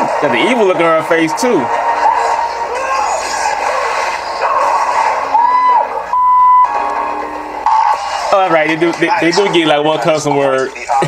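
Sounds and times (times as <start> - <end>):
dialogue: 0.0 - 11.0
film music: 1.0 - 8.7
censor bleep: 5.6 - 6.8.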